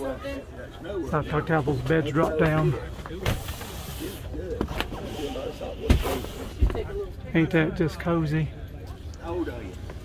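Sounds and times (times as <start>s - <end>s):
faint crowd chatter: 0.0s - 10.0s.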